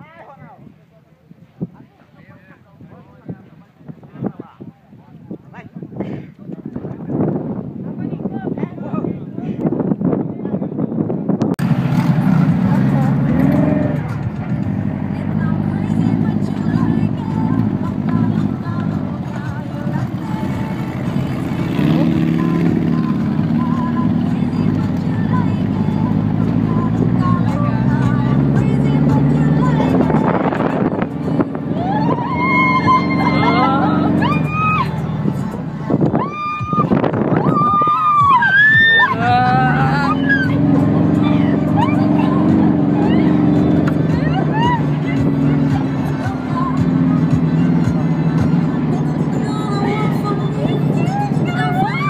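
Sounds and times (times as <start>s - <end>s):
dune buggy engine running: 11.0s - 52.0s
high-pitched cries: 31.8s - 35.0s.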